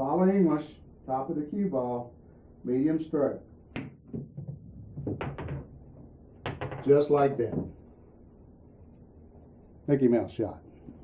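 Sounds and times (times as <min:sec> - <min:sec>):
pool balls clacking: 0:03.7 - 0:07.8
pool balls rolling: 0:03.7 - 0:07.8.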